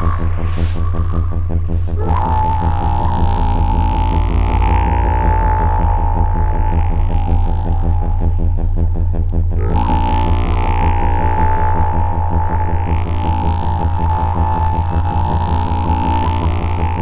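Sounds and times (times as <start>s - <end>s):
pulsing synthesizer drone: 0.0s - 17.0s
steady high tone: 0.0s - 17.0s.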